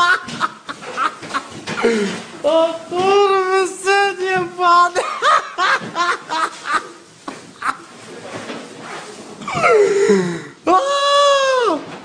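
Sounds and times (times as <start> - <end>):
person laughing: 0.0 - 2.2, 5.0 - 7.9.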